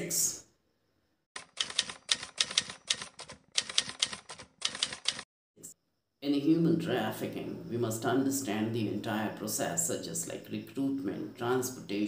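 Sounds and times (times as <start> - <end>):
typewriter key clacks: 1.4 - 5.2.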